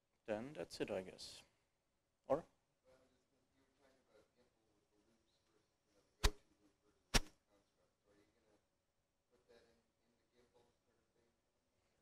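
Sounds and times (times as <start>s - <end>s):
sharp knock: 7.1s - 7.3s.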